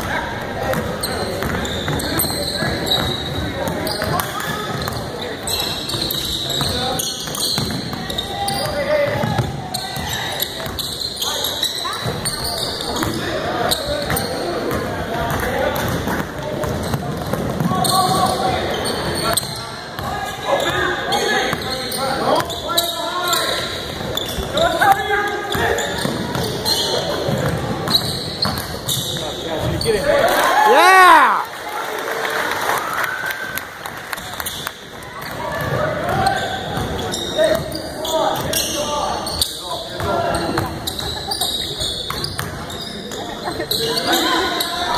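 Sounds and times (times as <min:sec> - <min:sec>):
voices in a big hall: 0:00.0 - 0:44.9.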